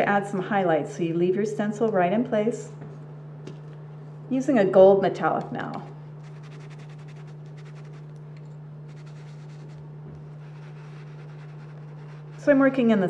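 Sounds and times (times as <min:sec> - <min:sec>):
steady low hum: 0:00.0 - 0:13.0
brush scratching on fabric: 0:06.2 - 0:08.1, 0:08.9 - 0:12.8.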